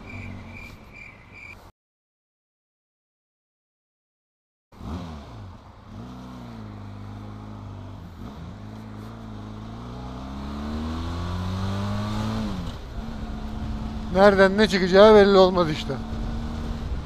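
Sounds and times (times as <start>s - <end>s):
motorcycle engine accelerating: 4.8s - 17.0s.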